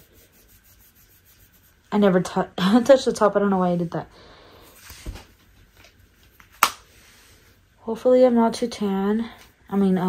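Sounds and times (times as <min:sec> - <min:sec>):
fingertip rubbing powder: 0:00.0 - 0:01.9.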